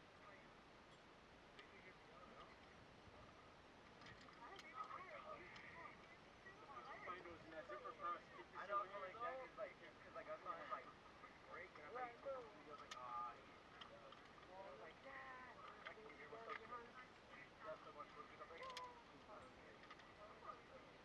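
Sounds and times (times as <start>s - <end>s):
people talking quietly: 0.0s - 21.0s.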